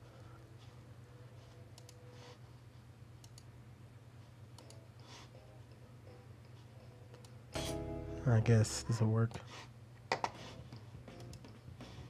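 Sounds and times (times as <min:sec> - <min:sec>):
low steady hum: 0:00.0 - 0:12.0
computer mouse clicks: 0:01.7 - 0:02.0, 0:03.2 - 0:03.5, 0:04.5 - 0:04.8, 0:11.1 - 0:11.5.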